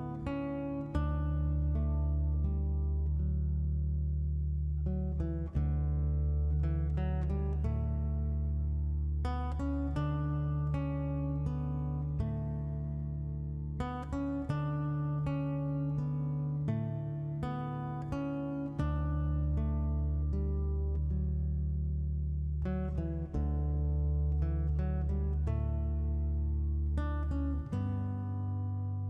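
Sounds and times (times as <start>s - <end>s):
acoustic guitar music: 0.0s - 29.0s.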